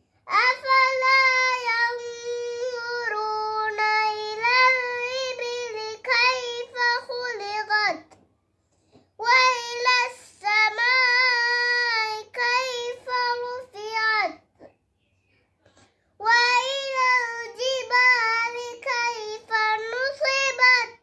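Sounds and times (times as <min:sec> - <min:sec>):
girl chanting recitation: 0:00.3 - 0:08.1, 0:09.2 - 0:14.5, 0:16.2 - 0:21.0.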